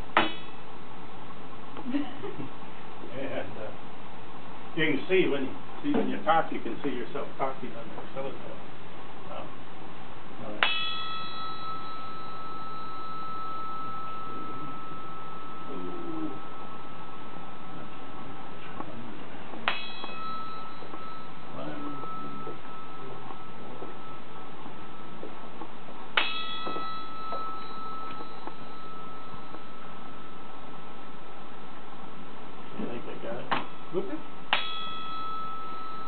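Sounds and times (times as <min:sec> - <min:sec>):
brass bar ringing: 0:10.6 - 0:18.0, 0:19.6 - 0:25.2, 0:26.1 - 0:31.2, 0:33.6 - 0:36.0.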